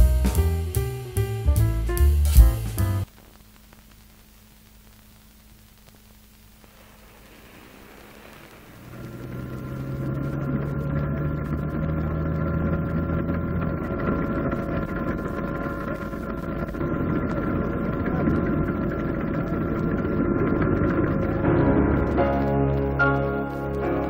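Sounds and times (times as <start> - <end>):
aircraft engine droning with whine: 6.7 - 22.2.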